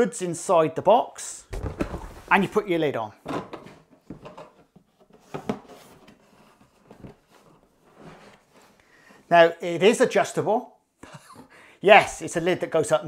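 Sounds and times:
cardboard lid scraping: 0:01.5 - 0:02.6, 0:03.6 - 0:08.8.

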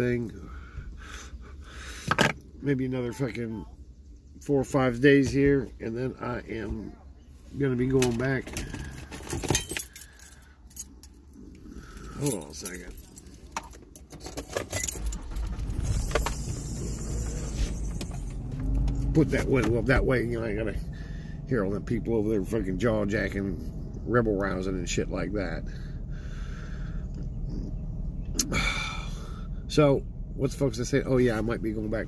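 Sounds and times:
low steady hum: 0:00.0 - 0:32.0
low rumble: 0:14.8 - 0:32.0
quiet breathing: 0:25.7 - 0:27.2.

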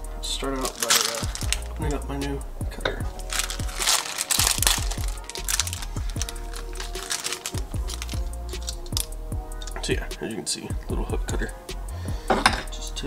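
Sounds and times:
music with steady beat: 0:00.0 - 0:13.0
brief rustling: 0:00.6 - 0:01.7, 0:03.2 - 0:09.8.

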